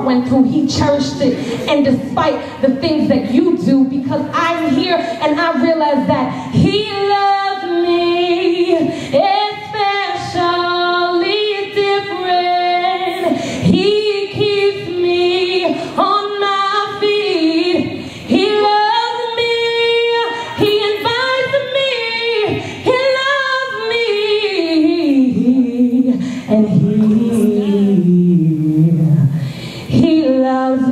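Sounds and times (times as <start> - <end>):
woman singing: 0.0 - 30.9.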